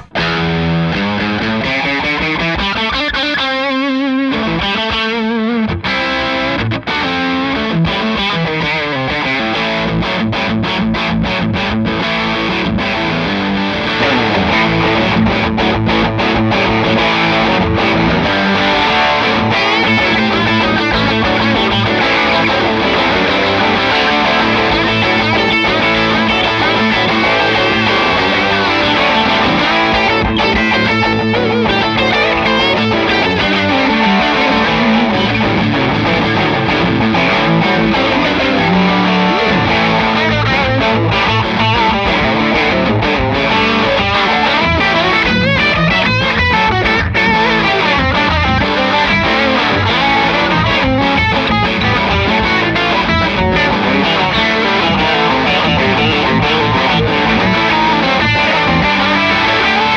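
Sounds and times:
driven electric guitar tone: 0:00.0 - 0:59.9
electric guitars playing: 0:00.0 - 0:59.9.

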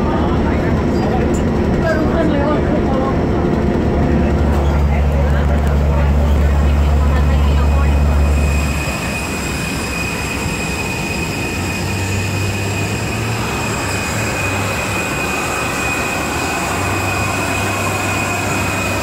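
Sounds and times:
high steady turbine whine: 0:00.0 - 0:19.0
jet turbine roar: 0:00.0 - 0:19.0.

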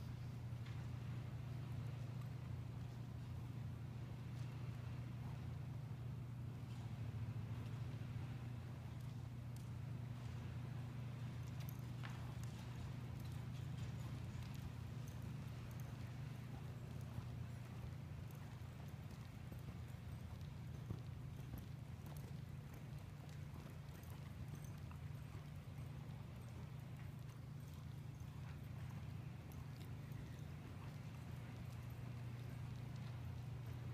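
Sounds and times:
horse hoofbeats on dirt: 0:00.0 - 0:33.9
steady low hum: 0:00.0 - 0:33.9.

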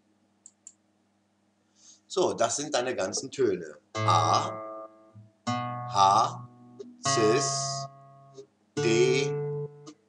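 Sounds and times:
faint electrical hum: 0:00.0 - 0:07.4.

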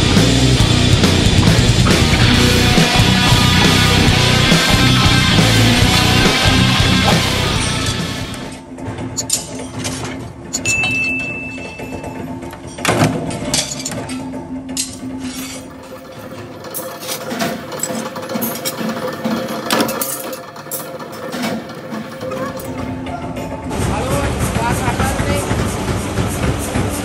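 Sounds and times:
music: 0:00.0 - 0:27.0.

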